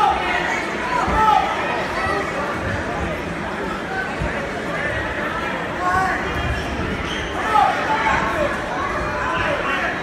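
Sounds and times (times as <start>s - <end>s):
spectators and coaches shouting: 0.0s - 2.5s, 5.5s - 10.0s.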